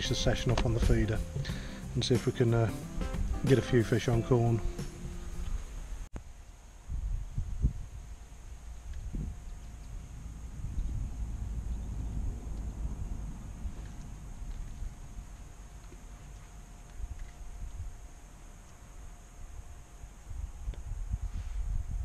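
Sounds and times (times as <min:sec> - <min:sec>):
wind buffeting microphone: 0:06.8 - 0:15.5, 0:20.2 - 0:22.0.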